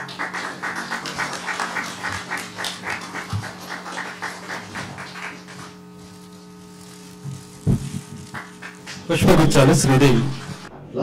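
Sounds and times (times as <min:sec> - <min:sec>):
crowd clapping: 0:00.0 - 0:06.0, 0:08.2 - 0:10.2
steady low hum: 0:00.0 - 0:11.0.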